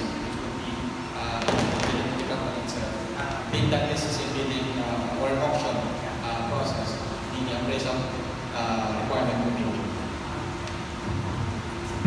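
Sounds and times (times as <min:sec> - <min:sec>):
faint sound system hum: 0:00.0 - 0:12.0.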